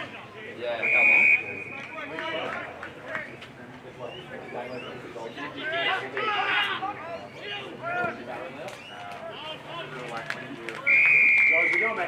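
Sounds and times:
whistle long blast: 0.8s - 1.8s, 10.9s - 11.8s
indistinct shouts and voices: 4.1s - 12.0s.

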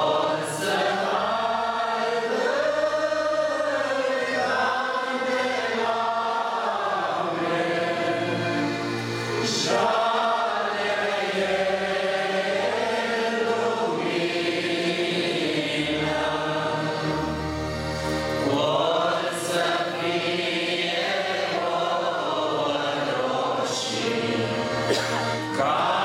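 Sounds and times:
congregation singing a hymn: 0.0s - 26.0s.

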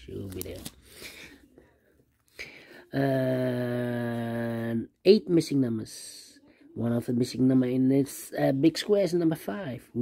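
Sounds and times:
man breathing softly: 0.8s - 2.9s.

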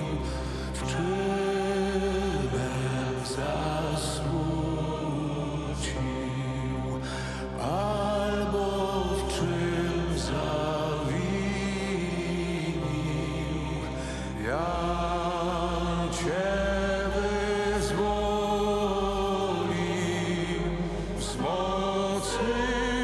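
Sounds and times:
group chanting a hymn: 0.0s - 23.0s
steady low drone: 0.0s - 23.0s.

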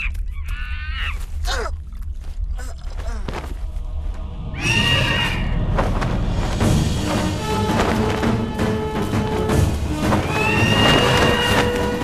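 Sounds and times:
film music: 0.0s - 12.0s
shrill bird screech: 4.5s - 5.6s, 10.2s - 11.8s.

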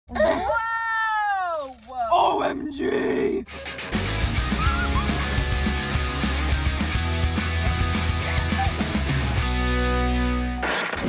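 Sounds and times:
intro music with driving beat: 3.7s - 10.2s.

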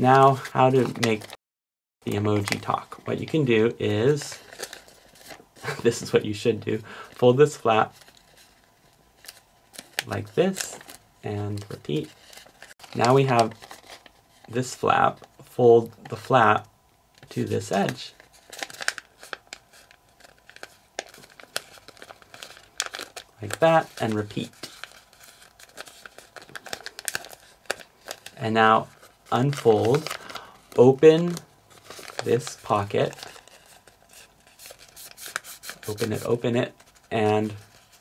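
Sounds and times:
paper crinkling as folded: 0.1s - 1.4s, 2.1s - 16.4s, 17.2s - 38.0s.

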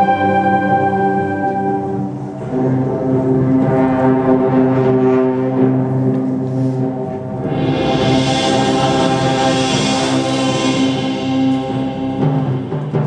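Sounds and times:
band playing held chords: 0.0s - 13.0s.

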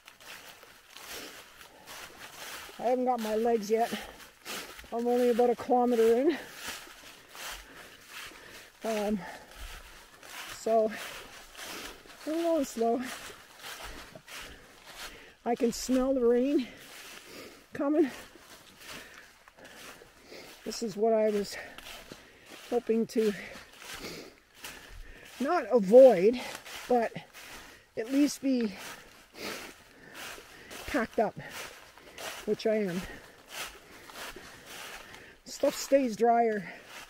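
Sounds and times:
footsteps on dry leaves: 0.0s - 37.0s
person breathing while walking: 0.0s - 37.0s.

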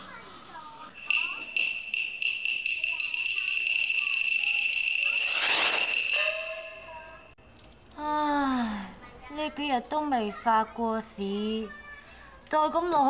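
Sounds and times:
held pitched note: 1.0s - 7.0s
shrill high-pitched trill: 1.0s - 7.4s.

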